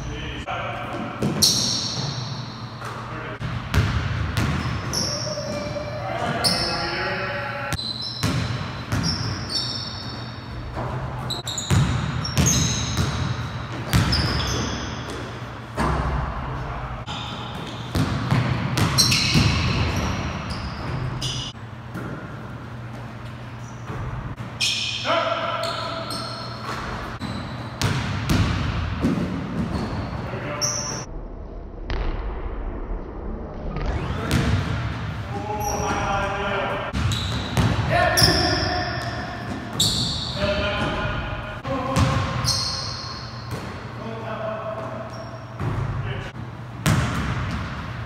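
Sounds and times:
players calling out: 0:04.8 - 0:08.2
basketball bouncing on hardwood floor: 0:46.8 - 0:47.8.

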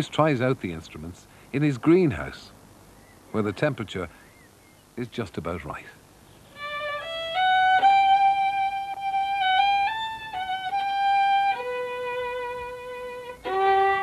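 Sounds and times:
violin bowed melody: 0:06.5 - 0:14.0.

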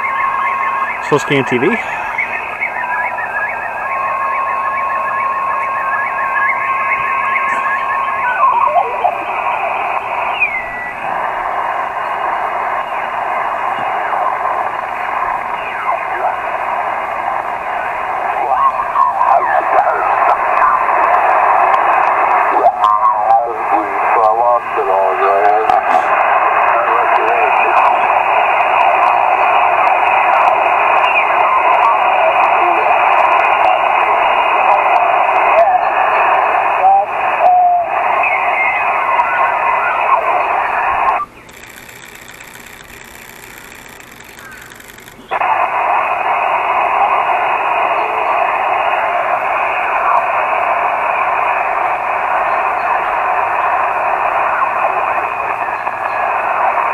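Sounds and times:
distorted radio voices: 0:00.0 - 0:56.9
radio hiss: 0:00.0 - 0:56.9.

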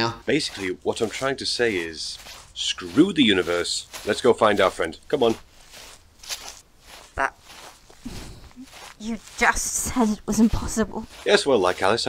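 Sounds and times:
person speaking: 0:00.0 - 0:05.5, 0:07.0 - 0:12.0
soft footsteps: 0:00.2 - 0:12.0.

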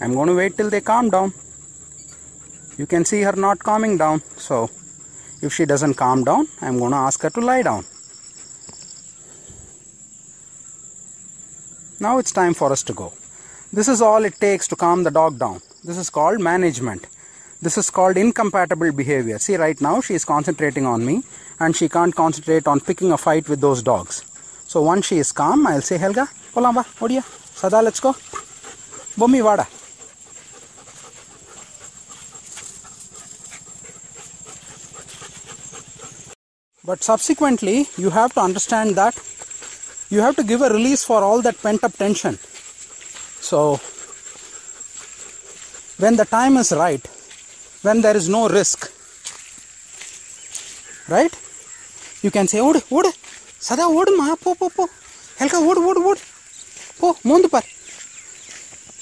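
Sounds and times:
crickets trilling: 0:00.0 - 0:59.0
dog panting: 0:00.2 - 0:05.9, 0:25.4 - 0:36.4, 0:37.4 - 0:53.6.

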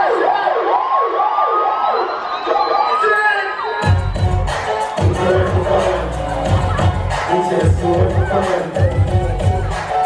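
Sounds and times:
wailing siren sound effect: 0:00.0 - 0:04.0.

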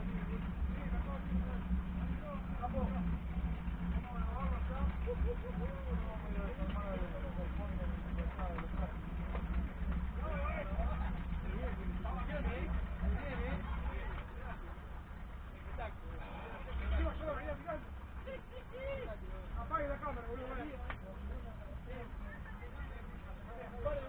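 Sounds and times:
race car engine idling: 0:00.0 - 0:24.0.

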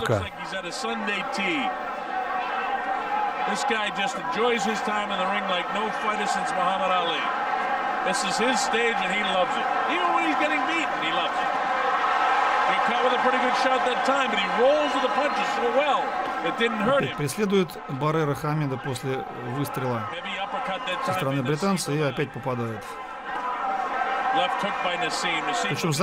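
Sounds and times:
man talking: 0:00.0 - 0:01.6, 0:12.8 - 0:22.9, 0:24.5 - 0:26.0.

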